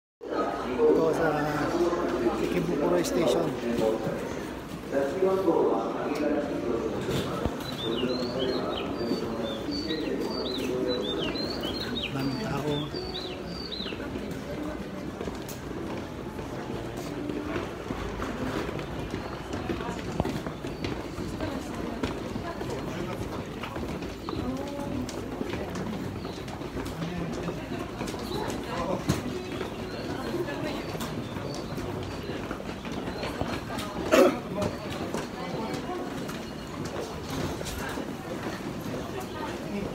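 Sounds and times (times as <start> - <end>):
indistinct crowd chatter: 0.2 - 39.9
footsteps on stairs and tiles: 0.8 - 39.9.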